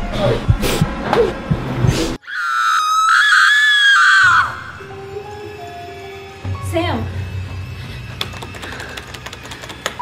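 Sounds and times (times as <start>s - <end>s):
music: 0.0s - 2.2s, 4.2s - 10.0s
woman screaming shrilly: 2.2s - 4.7s.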